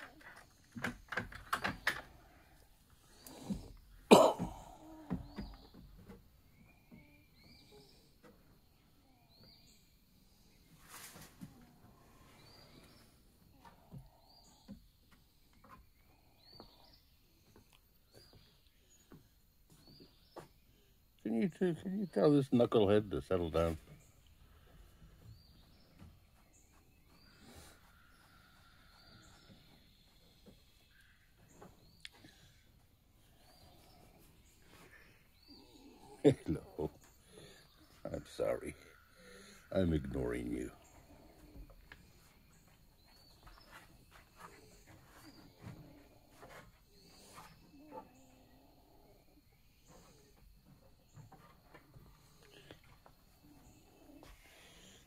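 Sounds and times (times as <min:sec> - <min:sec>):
faint bird chirps: 0:00.0 - 0:55.0.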